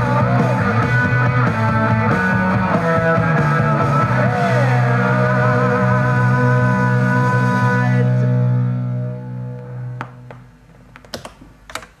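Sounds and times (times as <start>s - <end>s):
punk record chord: 0.0s - 10.6s.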